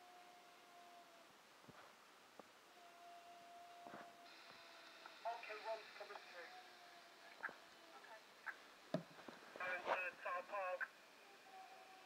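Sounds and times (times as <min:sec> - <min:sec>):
faint steady radio tone: 0:02.6 - 0:12.0
radio static hiss: 0:03.8 - 0:11.3
radio voice: 0:05.2 - 0:06.5, 0:09.6 - 0:10.9.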